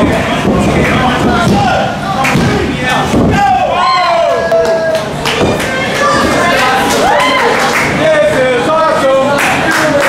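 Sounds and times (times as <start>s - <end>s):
people shouting and yelling: 0.2s - 9.7s
sharp knocks: 0.4s - 3.5s.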